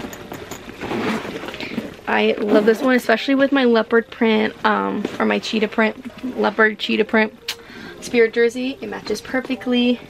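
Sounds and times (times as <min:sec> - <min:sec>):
backpack rustling in hands: 0:00.0 - 0:03.0.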